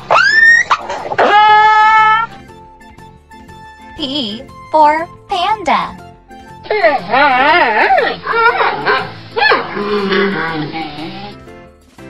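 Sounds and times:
killer whale squealing call: 0.1 - 2.3, 6.7 - 11.4
killer whale long call: 8.9 - 11.4.

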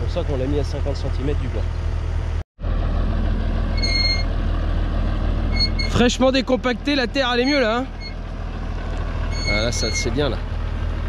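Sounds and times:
tractor diesel engine running: 0.0 - 11.0
high-pitched squeak or beep: 3.8 - 4.3, 5.5 - 6.0, 7.4 - 8.2, 9.3 - 10.2.

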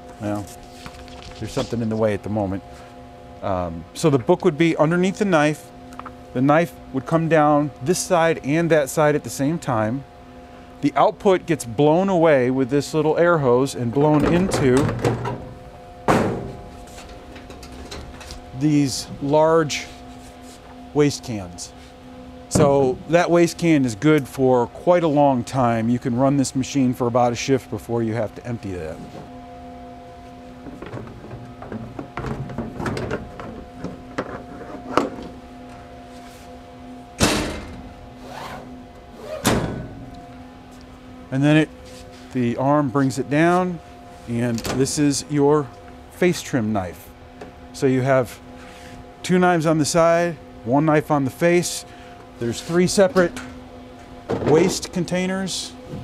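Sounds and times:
faint machine hum: 0.0 - 56.0.

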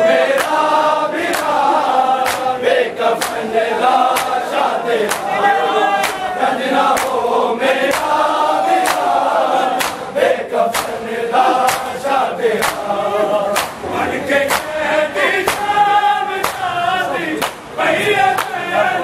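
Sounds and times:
men chanting in unison: 0.0 - 19.0
hands slapping on chests: 0.4 - 0.7, 1.3 - 2.6, 3.2 - 3.5, 4.1 - 5.3, 6.0 - 7.2, 7.9 - 8.2, 8.8 - 10.1, 10.7 - 12.9, 13.6 - 13.8, 14.5 - 14.8, 15.4 - 15.7, 16.4 - 16.7, 17.4 - 17.6.

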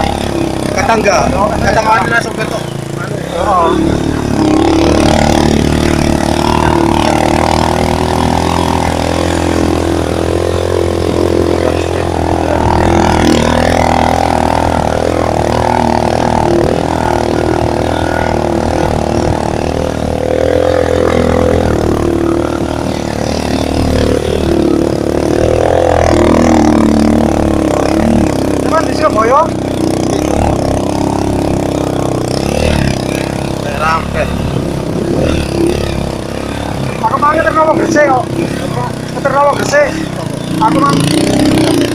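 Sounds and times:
motorcycle engine under load: 0.0 - 41.9.

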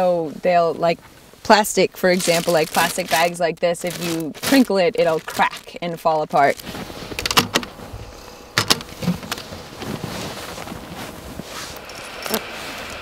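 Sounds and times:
steady low rumble: 1.4 - 13.0.

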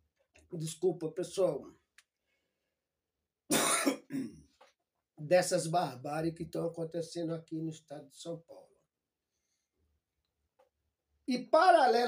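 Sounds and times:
man coughing: 3.5 - 4.5.

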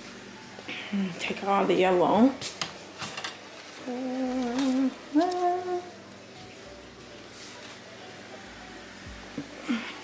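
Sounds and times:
woman humming: 3.8 - 6.2, 9.3 - 10.0.

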